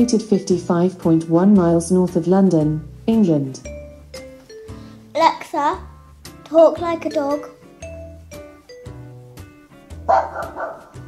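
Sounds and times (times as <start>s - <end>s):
background music: 0.0s - 11.0s
recorded dog bark from speaker: 10.0s - 11.0s.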